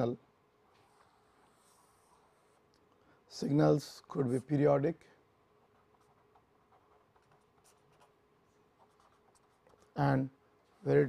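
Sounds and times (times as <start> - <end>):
pen scratching on paper: 0.8 - 2.6, 5.6 - 10.0.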